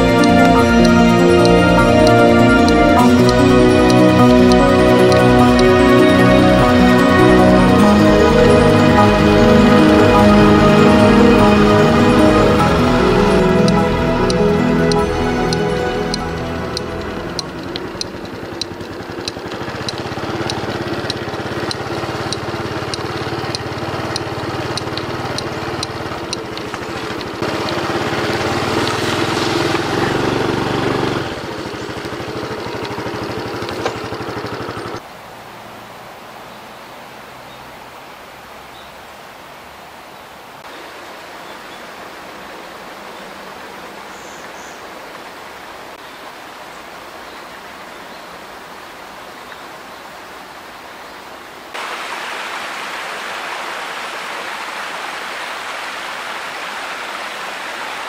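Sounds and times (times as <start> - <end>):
regular ticking: 0.0 - 35.0
steady humming: 0.0 - 35.0
mountain stream rushing: 0.0 - 58.0.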